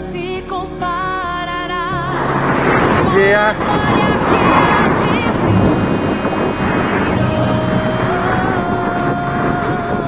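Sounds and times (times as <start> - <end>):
music with singing voice: 0.0 - 10.0
wind buffeting microphone: 1.9 - 10.0.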